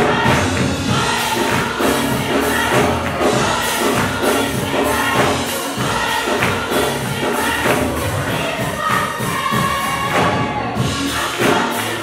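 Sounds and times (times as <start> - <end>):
gospel choir singing: 0.0 - 12.0
instrumental accompaniment with beat: 0.0 - 12.0.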